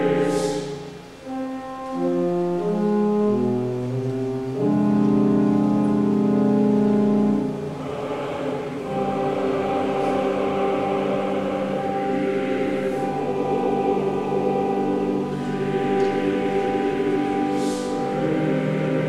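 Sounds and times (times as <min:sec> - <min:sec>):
church choir singing held chords: 0:00.0 - 0:19.0.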